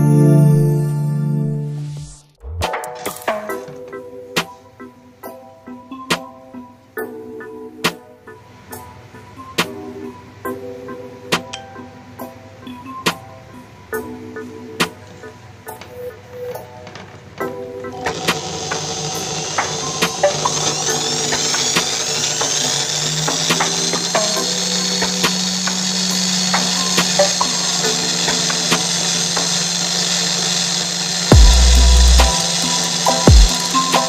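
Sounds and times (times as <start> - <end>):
electronic music: 0.0 - 16.8, 17.4 - 34.0
electric drill whining: 16.6 - 34.0
heavy bass hits: 31.3 - 32.3.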